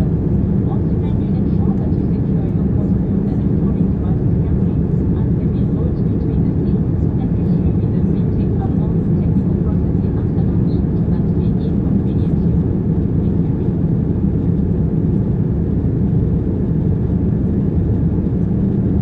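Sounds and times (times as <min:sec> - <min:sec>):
jet engine drone in cabin: 0:00.0 - 0:19.0.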